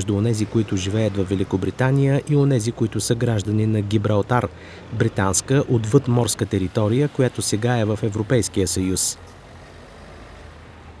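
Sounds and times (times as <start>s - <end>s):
road vehicles rumbling past: 0.0s - 11.0s.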